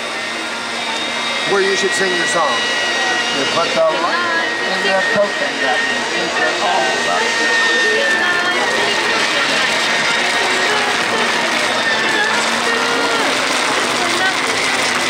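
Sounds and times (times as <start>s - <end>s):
blender running at high speed: 0.0s - 15.0s.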